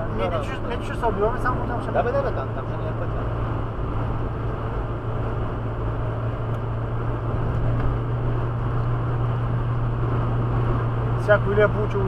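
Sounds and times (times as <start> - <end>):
car interior road drone: 0.0 - 12.0.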